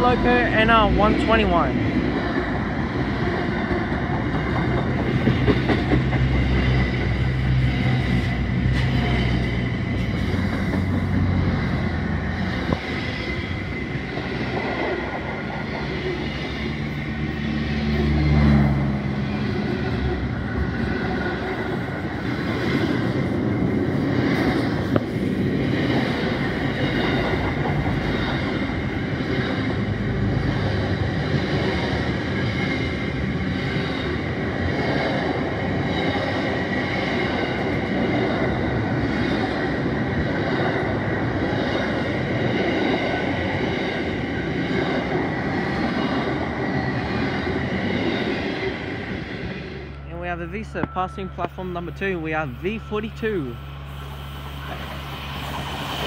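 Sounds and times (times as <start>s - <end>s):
freight train wheels rumbling on rail: 0.0s - 56.0s.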